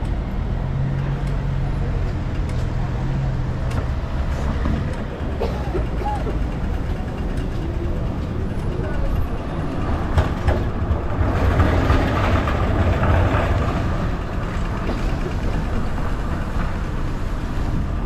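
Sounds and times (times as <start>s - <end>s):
city street traffic: 0.0s - 18.0s
pedestrians chattering: 0.0s - 18.0s.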